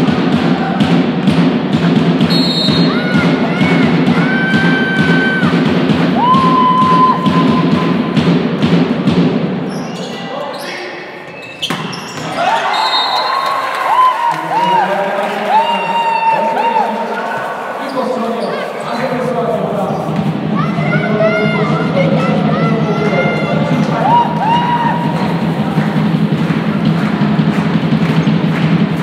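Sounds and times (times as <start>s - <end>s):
rhythmic drumming: 0.0s - 9.7s, 19.4s - 29.0s
sneakers squeaking on wooden court: 9.7s - 13.2s
voices: 14.3s - 27.0s.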